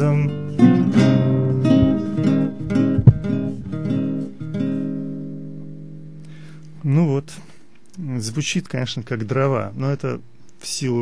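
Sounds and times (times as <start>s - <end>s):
acoustic guitar finger-picked: 0.0s - 7.5s
man talking: 6.8s - 11.0s.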